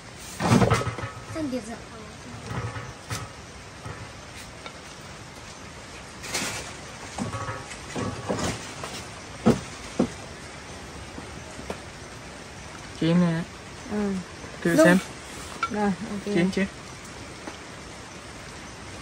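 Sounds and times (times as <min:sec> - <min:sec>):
steady low hiss: 0:00.0 - 0:19.0.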